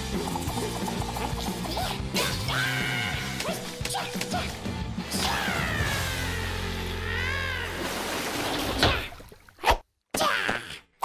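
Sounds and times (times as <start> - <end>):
cartoon water splashing: 7.7 - 9.8.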